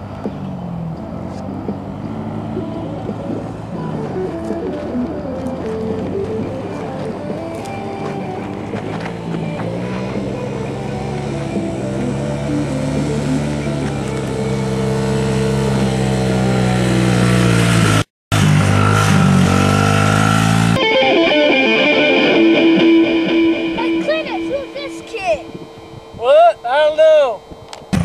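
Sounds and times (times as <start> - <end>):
dirt bike engine revving: 8.3 - 26.2
electric guitar: 20.8 - 25.9.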